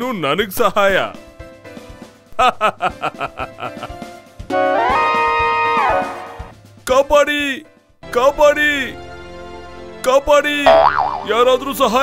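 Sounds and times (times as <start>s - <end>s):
springy boing sound effect: 10.7s - 11.4s.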